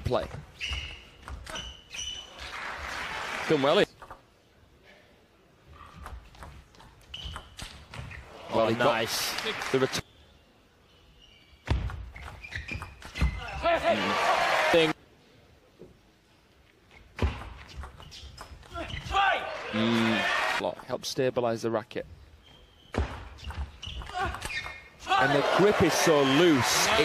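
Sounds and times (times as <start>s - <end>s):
table tennis ball hits and bounces: 5.9s - 8.2s, 11.6s - 13.4s, 17.2s - 19.1s, 22.9s - 24.8s.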